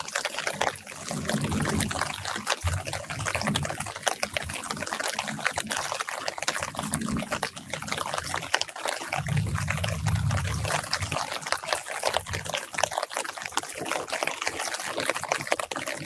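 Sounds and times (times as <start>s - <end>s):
light rain pattering on leaves: 0.0s - 16.0s.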